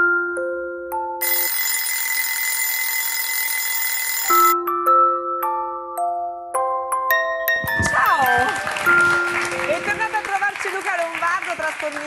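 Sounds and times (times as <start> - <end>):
electric bell ringing: 1.2 - 4.6.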